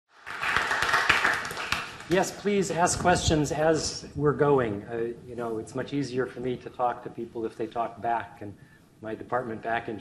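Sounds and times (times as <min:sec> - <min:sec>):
audience applauding: 0:00.2 - 0:02.2.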